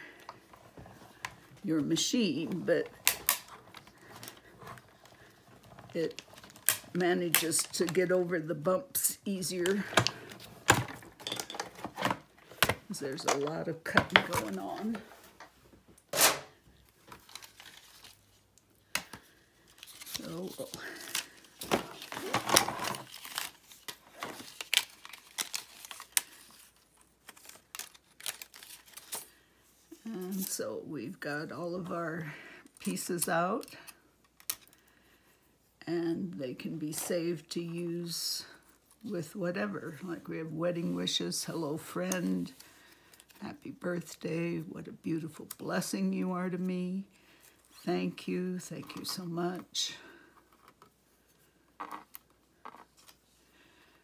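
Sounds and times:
paper rustling: 0:16.8 - 0:29.4.

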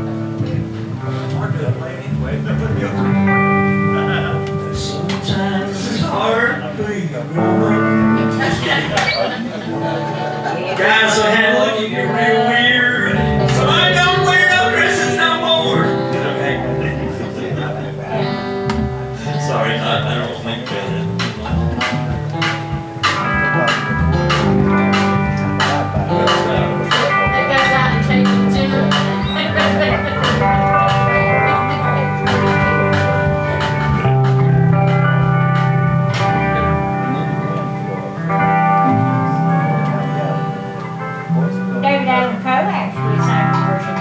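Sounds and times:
electric guitar: 0:00.0 - 0:44.0
live band music: 0:00.0 - 0:44.0
pedal steel guitar: 0:00.0 - 0:44.0
strummed acoustic guitar: 0:00.0 - 0:44.0
drum kit with cymbals: 0:20.2 - 0:37.1.

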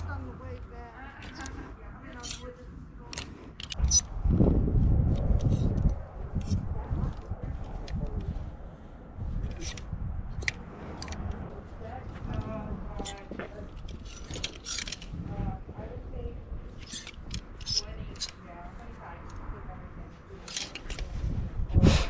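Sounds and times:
plastic hangers clicking on rail: 0:01.2 - 0:04.0, 0:13.0 - 0:15.1, 0:16.8 - 0:18.4, 0:20.4 - 0:21.1.

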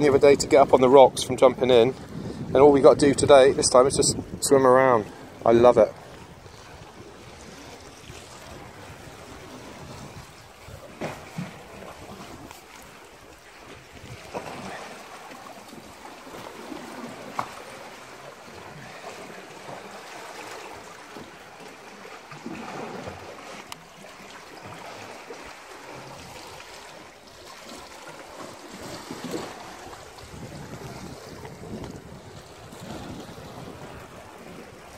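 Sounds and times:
wind buffeting microphone: 0:00.0 - 0:13.0, 0:13.7 - 0:14.9, 0:28.8 - 0:34.9
sea water washing on rocks: 0:03.4 - 0:34.9.

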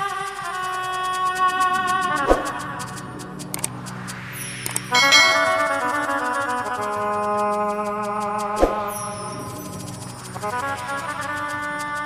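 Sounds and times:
electronic keyboard chords: 0:05.0 - 0:06.7.

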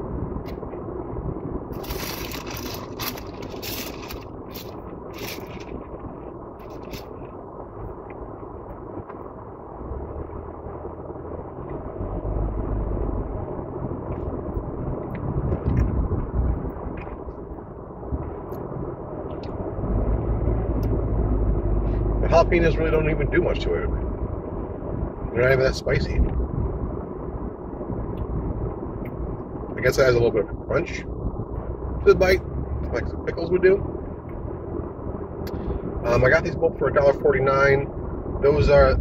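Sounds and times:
car interior rumble: 0:00.0 - 0:39.0.

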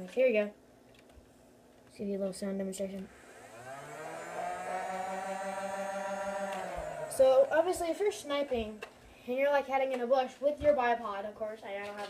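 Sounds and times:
toy blaster flywheel motors whirring: 0:03.0 - 0:09.0.

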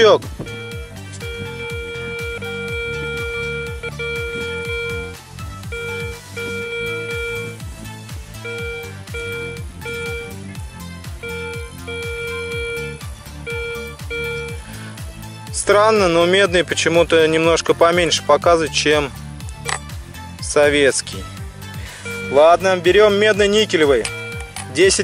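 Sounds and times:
metal detector tone: 0:00.0 - 0:07.6, 0:08.4 - 0:10.4, 0:11.2 - 0:14.6, 0:22.0 - 0:22.7, 0:23.8 - 0:24.8
background guitar music: 0:00.0 - 0:25.0.

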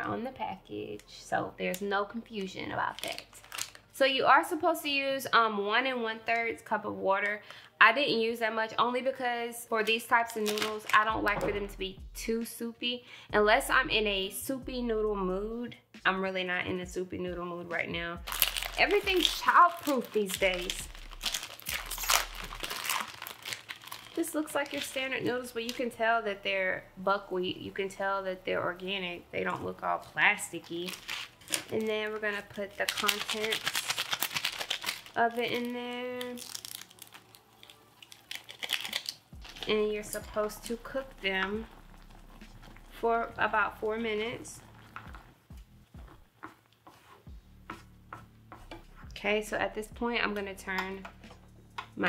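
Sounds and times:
plastic food packaging crinkling: 0:01.6 - 0:04.0, 0:09.8 - 0:11.4, 0:18.2 - 0:26.0, 0:29.4 - 0:43.0, 0:44.3 - 0:45.3.

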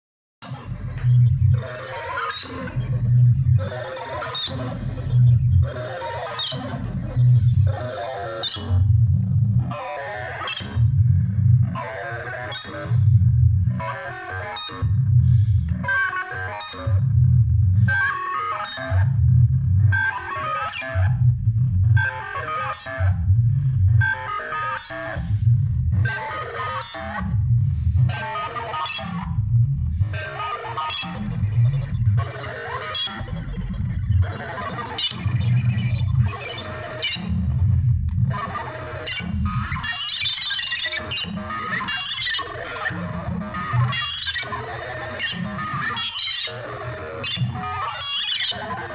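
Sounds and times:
synth bass line: 0:00.7 - 0:01.7, 0:21.0 - 0:22.0, 0:29.2 - 0:30.2, 0:33.0 - 0:38.5.

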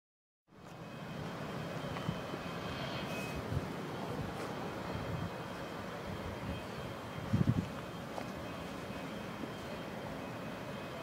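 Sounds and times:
distant jet engines running: 0:00.5 - 0:11.0
faint high whine: 0:00.5 - 0:11.0.

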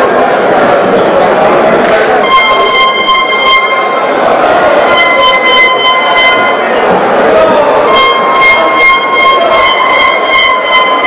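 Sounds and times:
steady high-pitched tone: 0:02.2 - 0:04.2, 0:04.8 - 0:06.8, 0:07.8 - 0:11.0.

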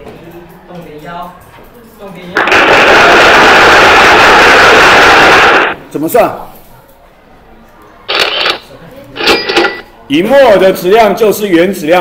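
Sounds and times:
rushing noise sound effect: 0:02.4 - 0:05.8.

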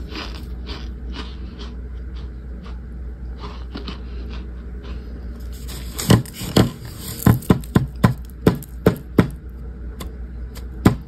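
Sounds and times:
cornstarch chunks crunching: 0:00.0 - 0:09.4.

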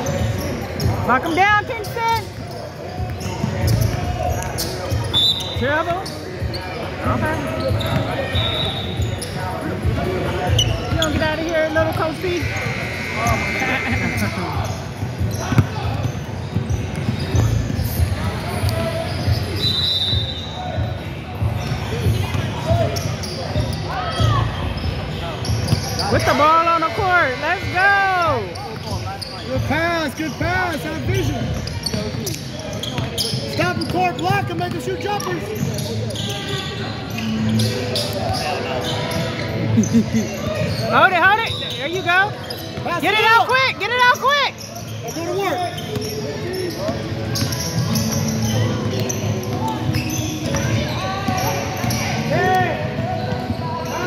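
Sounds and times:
high shoe squeaks: 0:00.0 - 0:54.0
echoing voices: 0:20.4 - 0:54.0.

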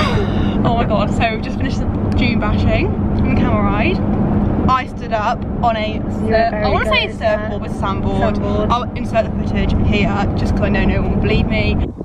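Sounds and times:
car engine and road drone: 0:00.0 - 0:12.0
voices talking: 0:04.7 - 0:11.8.

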